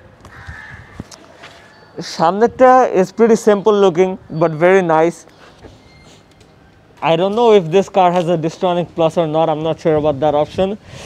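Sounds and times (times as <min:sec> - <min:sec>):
faint footsteps: 0:00.2 - 0:01.7
crow cawing: 0:00.3 - 0:01.1.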